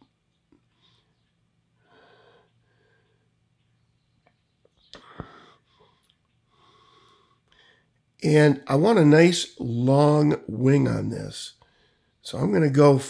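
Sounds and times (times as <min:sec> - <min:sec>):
soft breathing: 0:00.6 - 0:03.5, 0:04.8 - 0:08.1, 0:11.6 - 0:12.2.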